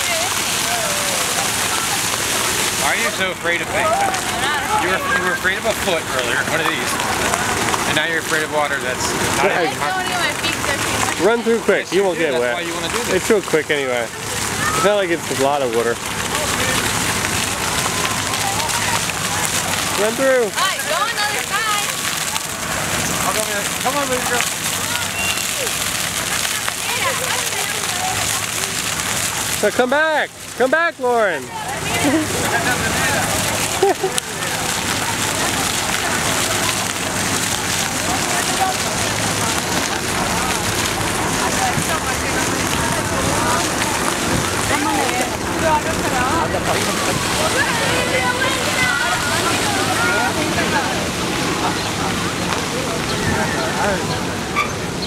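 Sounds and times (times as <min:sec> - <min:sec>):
faint voices: 0:00.0 - 0:55.0
fountain jets spraying water: 0:00.0 - 0:55.0
water spattering on paving: 0:00.0 - 0:55.0.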